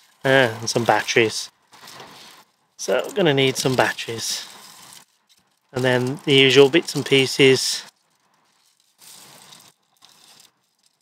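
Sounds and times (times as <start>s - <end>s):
soft handling of plastic wrappers: 0.0s - 11.0s.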